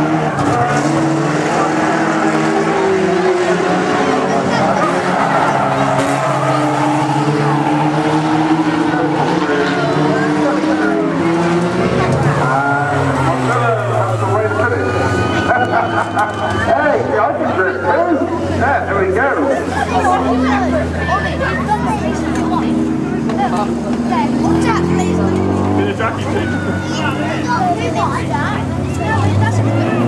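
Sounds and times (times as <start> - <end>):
crowd shouting: 0.0 - 30.0
racing car engines: 0.0 - 30.0.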